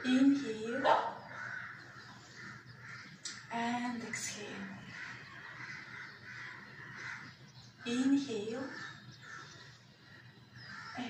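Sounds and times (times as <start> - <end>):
faint bird calls: 0.0 - 11.0.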